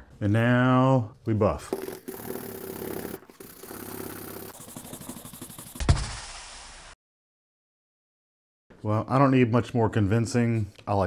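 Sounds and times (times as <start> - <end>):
brush buffing leather: 1.8 - 5.8
sharp thump: 5.8 - 6.2.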